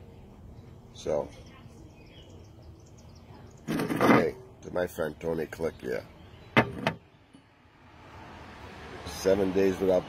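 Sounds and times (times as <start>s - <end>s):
faint high bird chirps: 0.5s - 3.8s.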